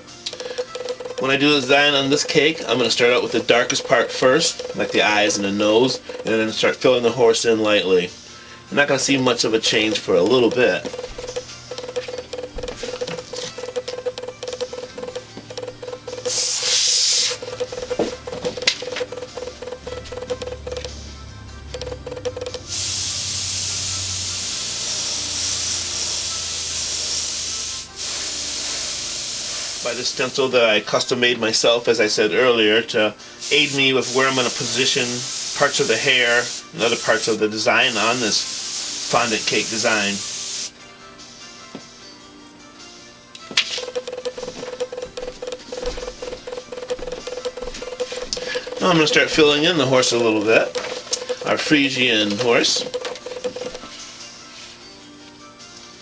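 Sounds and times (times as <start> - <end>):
background music with clicking beat: 0.0 - 8.1, 8.8 - 32.0, 33.4 - 40.8, 42.8 - 54.7
airbrush hissing: 16.2 - 17.6, 22.7 - 30.3, 33.4 - 40.8.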